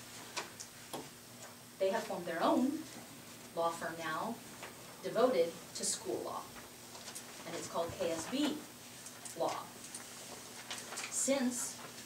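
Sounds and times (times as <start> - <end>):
low room noise: 0.0 - 12.0
person speaking: 7.4 - 9.9, 11.1 - 11.9.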